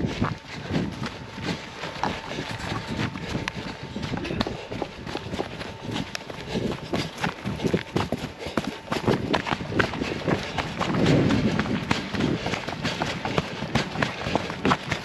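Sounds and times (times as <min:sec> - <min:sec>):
running footsteps on grass and stones: 0:00.0 - 0:15.0.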